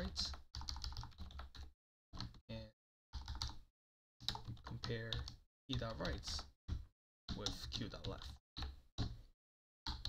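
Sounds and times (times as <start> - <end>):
computer keyboard typing: 0.0 - 2.4, 3.1 - 3.6, 4.2 - 9.2.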